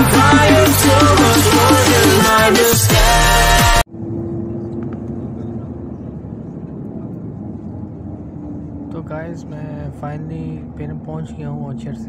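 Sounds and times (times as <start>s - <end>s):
pop song with vocals: 0.0s - 3.8s
vehicle engine and road rumble: 3.8s - 12.0s.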